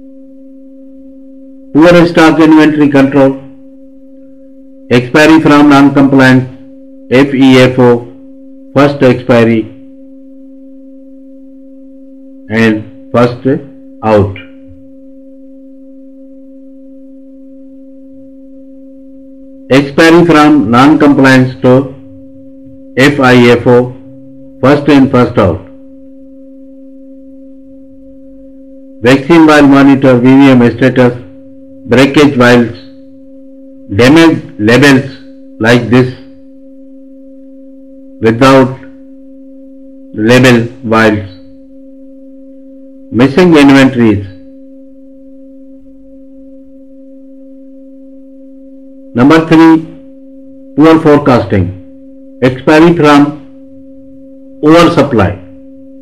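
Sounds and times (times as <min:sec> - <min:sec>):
faint higher tone: 0:00.0 - 0:05.1, 0:05.8 - 0:56.0
steady low hum: 0:00.0 - 0:56.0
man speaking: 0:01.8 - 0:03.5, 0:04.9 - 0:08.2, 0:08.8 - 0:09.8, 0:12.5 - 0:14.6, 0:19.7 - 0:22.2, 0:23.0 - 0:25.7, 0:29.0 - 0:31.3, 0:31.9 - 0:33.0, 0:33.9 - 0:36.3, 0:38.2 - 0:38.9, 0:40.2 - 0:41.5, 0:43.1 - 0:44.4, 0:49.2 - 0:50.0, 0:50.8 - 0:51.8, 0:52.4 - 0:53.5, 0:54.6 - 0:55.5.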